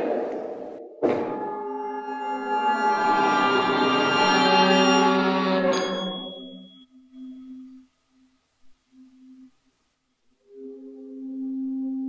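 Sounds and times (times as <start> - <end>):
chamber ensemble chord: 1.3 - 6.8
thin high tone: 1.4 - 9.5.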